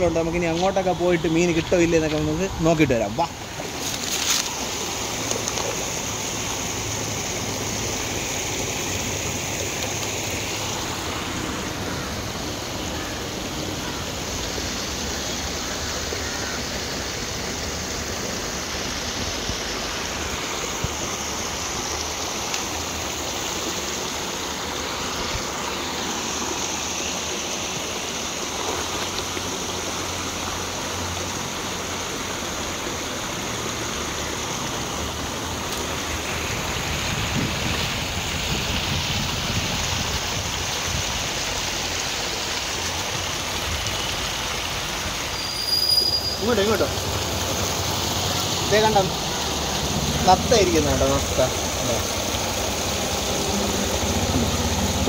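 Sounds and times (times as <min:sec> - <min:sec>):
water rushing over rocks: 0:00.0 - 0:55.0.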